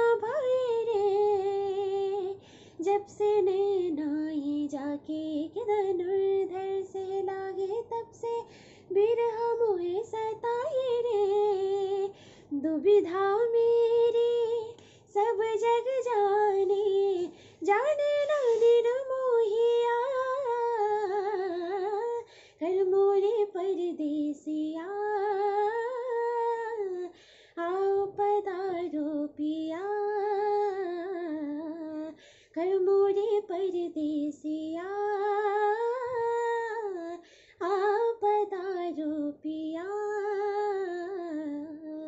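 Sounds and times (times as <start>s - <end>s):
woman singing unaccompanied: 0.0s - 42.0s.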